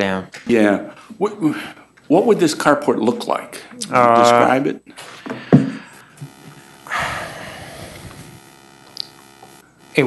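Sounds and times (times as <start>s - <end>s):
electrical hum: 3.8s - 10.0s.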